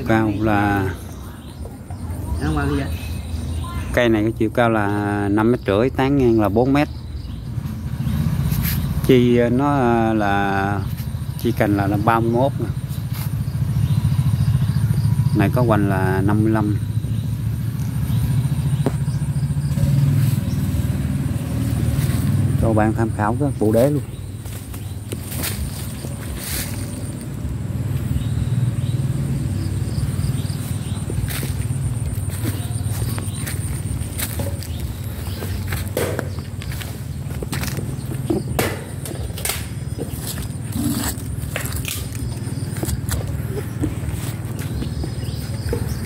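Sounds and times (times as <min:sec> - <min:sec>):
footsteps on dry leaves and soil: 0:20.0 - 0:22.6, 0:24.2 - 0:27.4, 0:30.2 - 0:38.6, 0:39.2 - 0:46.0.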